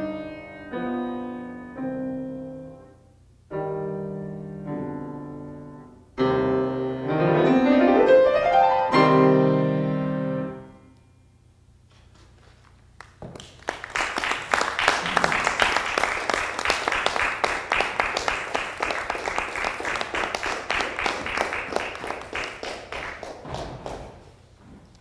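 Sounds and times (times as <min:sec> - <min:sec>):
audience applauding: 0:13.0 - 0:24.1.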